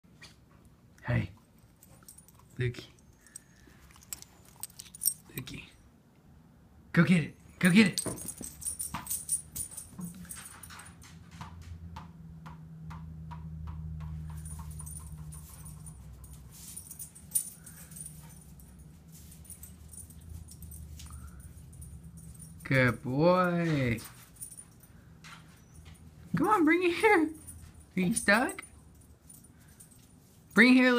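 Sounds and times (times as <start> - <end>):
puppy claws tapping on floor: 8.0 - 16.4
ball bouncing on hard floor: 11.2 - 15.3.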